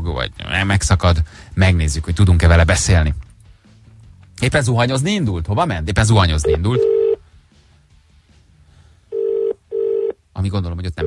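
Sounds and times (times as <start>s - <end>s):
buzzy telephone line tone: 6.4s - 7.2s, 9.1s - 10.2s.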